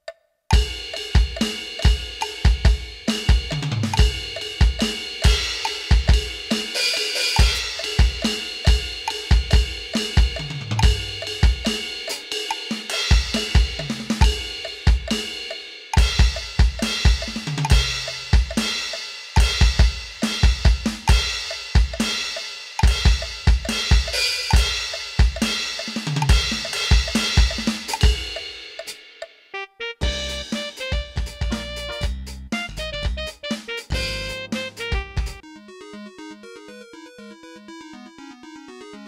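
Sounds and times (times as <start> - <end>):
metronome clicking: 0.0 - 2.5, 3.5 - 19.5, 20.3 - 29.4
electronic drum kit: 0.5 - 29.4, 30.0 - 35.4.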